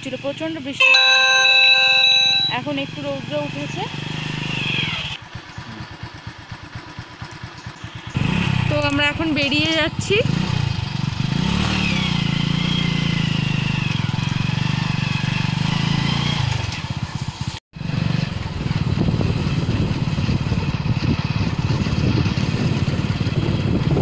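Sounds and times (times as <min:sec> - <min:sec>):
motorbike engine running: 0:00.0 - 0:24.0
wind rumbling on microphone: 0:18.3 - 0:24.0.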